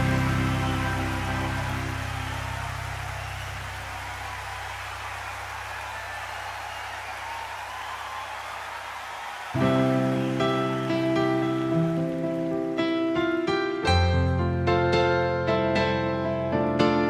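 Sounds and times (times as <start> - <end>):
low hum: 0.0 - 5.7.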